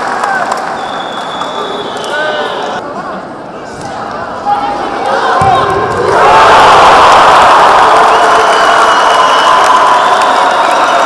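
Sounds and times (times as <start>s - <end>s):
spectators cheering and shouting: 4.0s - 11.0s.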